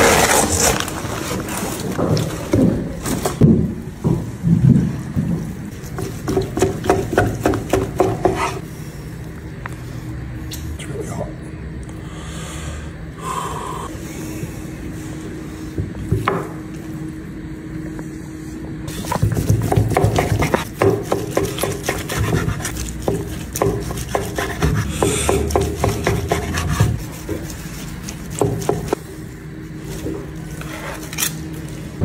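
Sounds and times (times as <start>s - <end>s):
steady low hum: 0.0s - 32.0s
knife scraping wooden board: 5.8s - 8.6s, 18.9s - 29.0s
knife sawing through meat: 19.6s - 29.0s.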